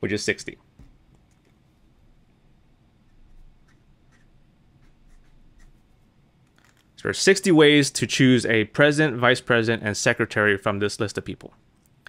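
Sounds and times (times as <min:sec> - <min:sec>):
pen nib scratching paper: 0:03.0 - 0:06.0.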